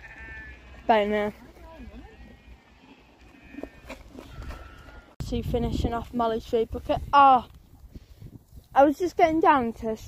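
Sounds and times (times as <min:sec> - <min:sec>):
sheep bleating: 0:00.0 - 0:00.9, 0:01.8 - 0:05.2.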